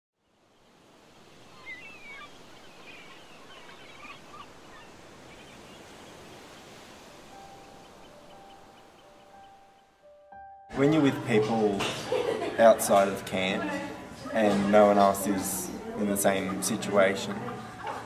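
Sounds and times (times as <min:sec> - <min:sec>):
bird chirps: 0:01.4 - 0:10.6.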